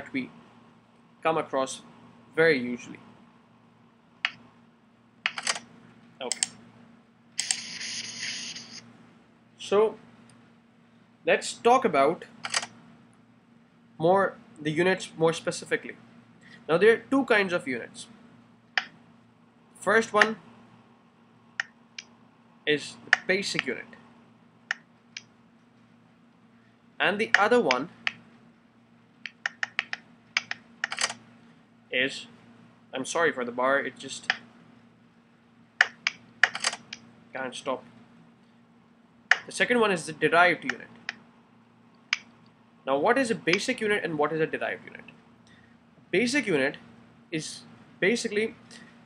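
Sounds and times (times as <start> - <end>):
sharp clicks: 5.2 - 5.6, 29.2 - 31.2, 39.3 - 39.5.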